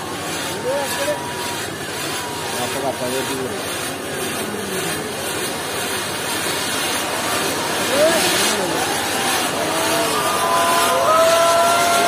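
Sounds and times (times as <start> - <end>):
fireworks hissing: 0.0 - 12.0.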